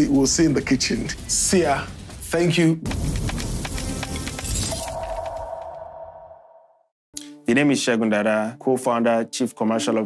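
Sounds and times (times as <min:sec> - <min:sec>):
music: 0:00.0 - 0:05.1, 0:07.1 - 0:10.0.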